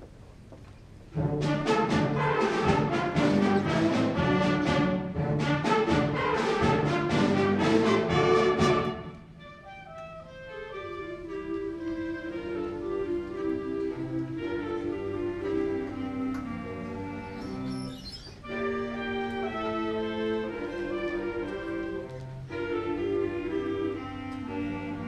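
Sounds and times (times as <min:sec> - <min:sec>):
wind band playing: 0:01.1 - 0:25.0
brass accents: 0:01.2 - 0:25.0.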